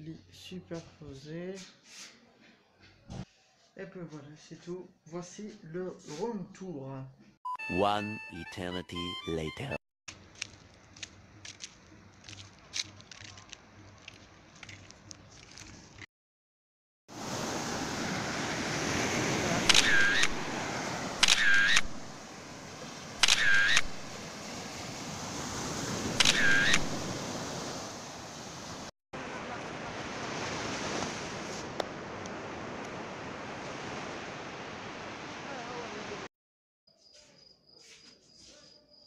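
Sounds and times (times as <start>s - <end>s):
waves breaking on beach: 17.1s - 36.3s.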